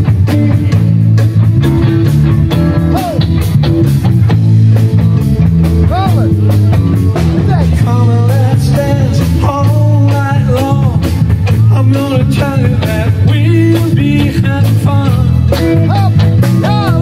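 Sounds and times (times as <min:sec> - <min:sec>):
man singing: 0:00.0 - 0:01.1, 0:07.3 - 0:17.0
live rock band playing: 0:00.0 - 0:17.0.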